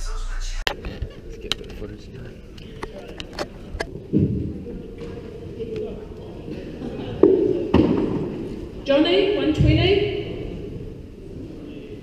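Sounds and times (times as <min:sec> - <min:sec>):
murmur of large hall: 0:00.0 - 0:12.0.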